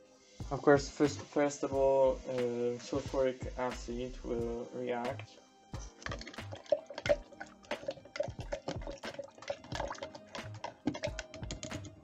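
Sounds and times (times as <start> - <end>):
background music: 0.0 - 12.0
liquid fizzing in a glass beaker: 5.8 - 12.0.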